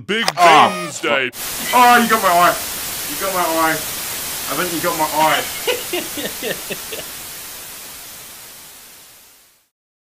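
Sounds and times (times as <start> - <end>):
tv static hiss: 0.4 - 9.7.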